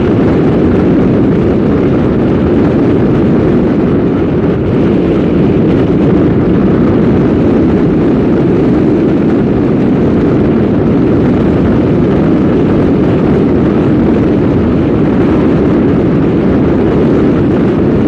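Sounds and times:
car driving on street: 0.0s - 18.0s.

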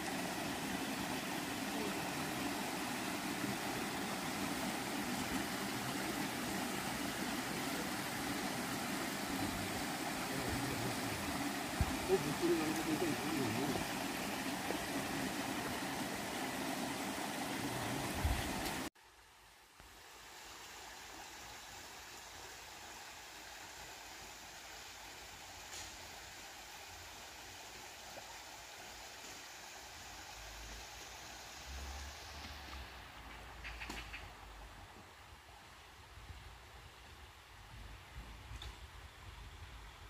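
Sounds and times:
mountain stream rushing: 0.0s - 18.9s, 19.9s - 36.0s.

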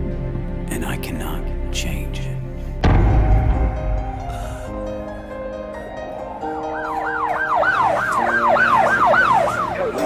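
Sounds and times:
synth chords backing music: 0.0s - 10.0s
siren yelping: 6.1s - 10.0s.

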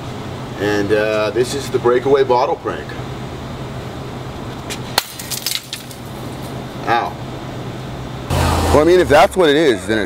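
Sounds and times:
breaking pieces clattering: 5.0s - 6.0s
bottle smashing crack: 5.0s - 6.1s.

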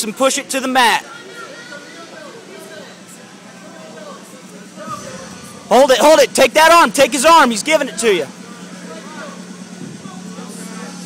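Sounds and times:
people talking in background: 0.0s - 11.0s
steady low hum: 3.1s - 11.0s.

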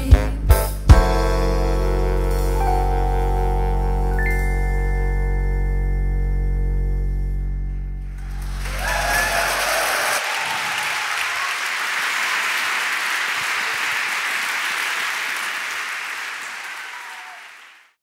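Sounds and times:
band low chord ringing: 0.9s - 8.7s
audience applauding: 8.2s - 18.0s.

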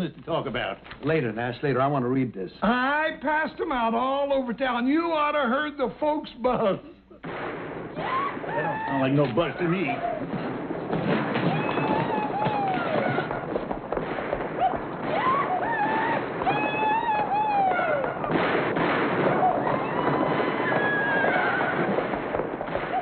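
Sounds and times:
gunshots cracking: 7.2s - 23.0s
men whooping and yelling: 8.0s - 10.4s, 11.4s - 13.5s, 14.6s - 18.4s, 19.2s - 22.0s.

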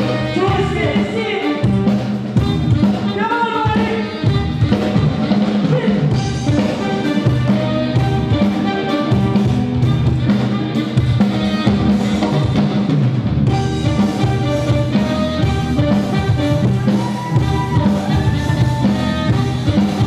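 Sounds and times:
band music with drum kit: 0.0s - 20.0s.

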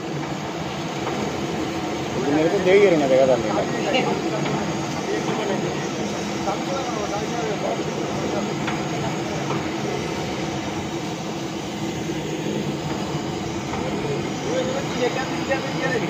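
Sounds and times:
roasting machine rumble and hum: 0.0s - 16.0s.

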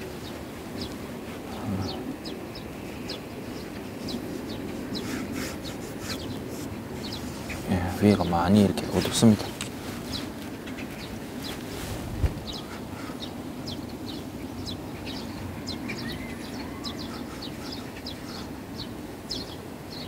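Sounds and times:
low wind rumble: 0.0s - 20.0s
small birds chirping: 0.0s - 20.0s.

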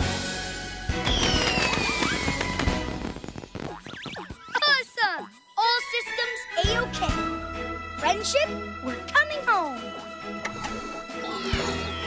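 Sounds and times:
background music: 0.0s - 12.0s
falling whistle: 1.0s - 2.7s
firework-like crackling pops: 1.0s - 4.3s
cartoon pop: 1.0s - 4.6s.

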